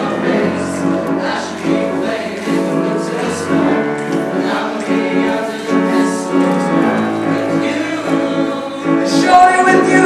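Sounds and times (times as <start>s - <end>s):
men's choir singing: 0.0s - 10.0s.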